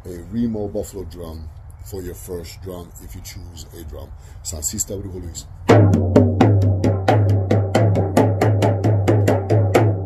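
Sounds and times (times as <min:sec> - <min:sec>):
frame drum beaten with a stick: 0:05.7 - 0:10.0.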